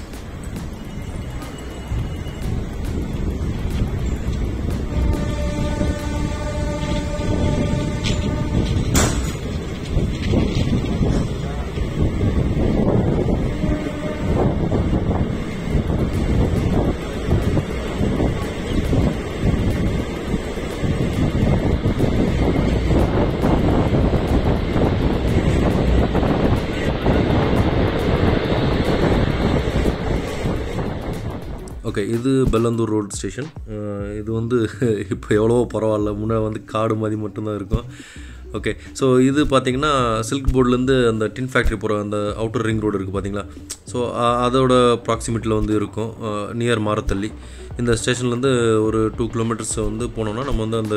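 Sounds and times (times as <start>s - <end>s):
train wheels rumbling and rattling: 0.0s - 36.6s, 37.6s - 50.9s.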